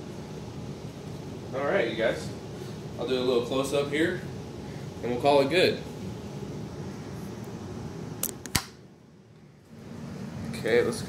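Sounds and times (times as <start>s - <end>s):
fan hum: 0.0s - 11.0s.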